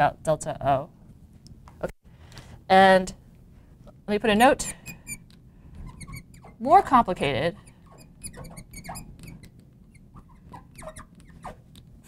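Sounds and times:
marker squeaking on glass: 4.6s - 6.8s, 7.5s - 11.7s.

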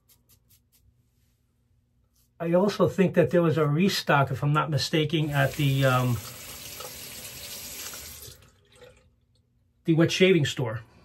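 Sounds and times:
water running from a tap: 5.2s - 9.0s.

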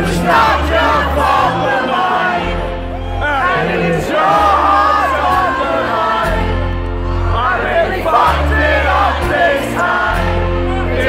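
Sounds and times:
crowd cheering and singing: 0.0s - 11.0s
live band music over loudspeakers: 0.0s - 11.0s.

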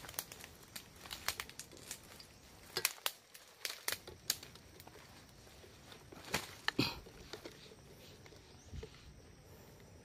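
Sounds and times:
footsteps in dry leaves: 0.0s - 6.7s.

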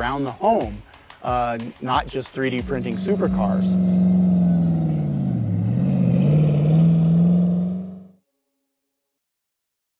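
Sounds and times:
car engine driving off: 2.6s - 8.2s.

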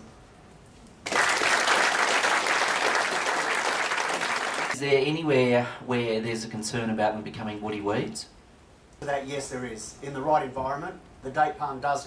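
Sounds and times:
audience applauding: 1.0s - 4.8s.

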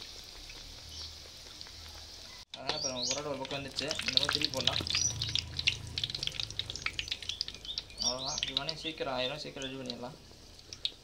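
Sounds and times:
dough deep-frying in oil: 0.0s - 11.0s.

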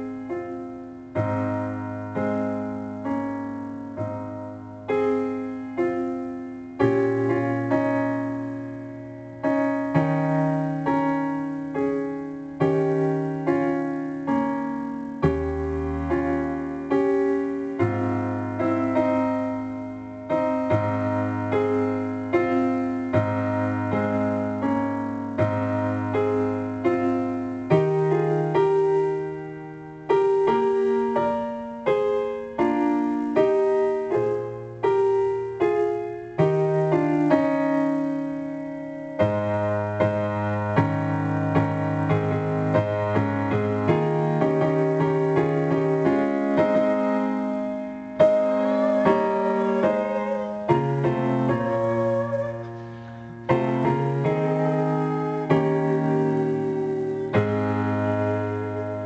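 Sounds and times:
piano playing: 0.0s - 59.0s.

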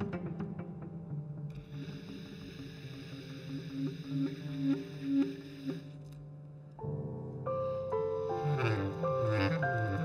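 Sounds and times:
piano and clarinet jazz: 7.6s - 10.0s.

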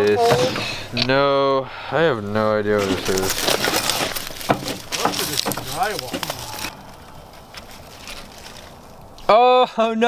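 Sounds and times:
crunching and scraping of debris: 0.0s - 1.2s, 2.1s - 9.3s
low voice murmuring: 5.0s - 6.9s.

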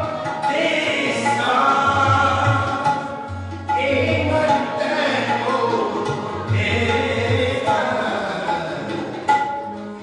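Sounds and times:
man singing: 0.0s - 9.3s
harmonium chords: 0.0s - 10.0s.

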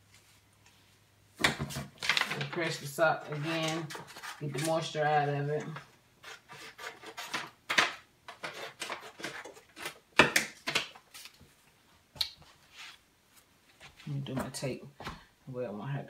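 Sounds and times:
paper rustling: 1.5s - 4.9s.

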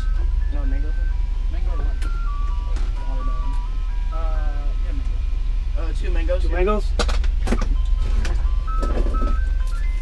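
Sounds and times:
ice cream truck jingle: 0.0s - 10.0s
steady low rumble: 0.0s - 10.0s.

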